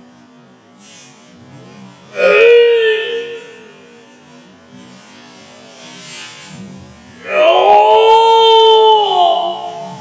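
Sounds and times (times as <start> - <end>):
man's loud shout: 2.2 - 4.0, 7.2 - 10.0.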